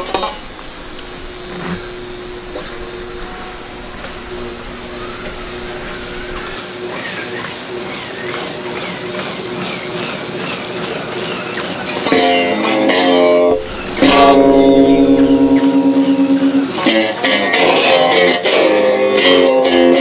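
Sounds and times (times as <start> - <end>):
electric guitar droning notes: 0.0 - 6.6, 12.0 - 20.0
high wavering tone: 0.0 - 6.6, 12.1 - 18.3.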